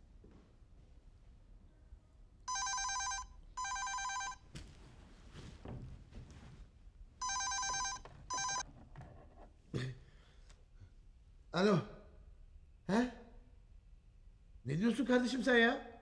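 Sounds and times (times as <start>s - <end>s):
cordless telephone ringing: 2.5s - 4.4s, 7.2s - 8.7s
bedclothes rustling: 3.9s - 9.2s.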